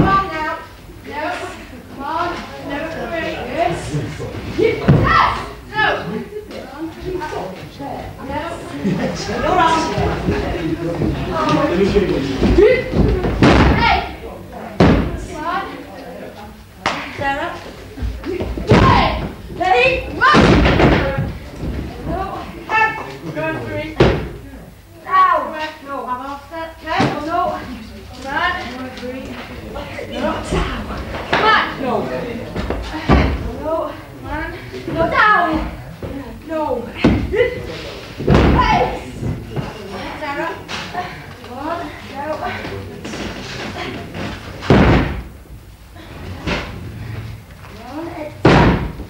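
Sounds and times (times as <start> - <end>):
wrestlers thudding on ring: 9.7 - 14.1, 14.7 - 15.3, 18.0 - 22.5, 38.2 - 39.8, 44.1 - 45.4, 48.4 - 49.0
body slamming on ring mat: 44.7 - 45.3, 48.4 - 49.0.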